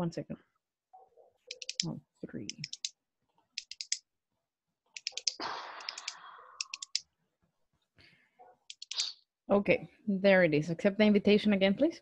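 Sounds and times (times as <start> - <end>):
computer mouse clicks: 1.5 - 1.9, 2.5 - 2.9, 3.6 - 4.0, 5.0 - 7.0, 8.7 - 9.1.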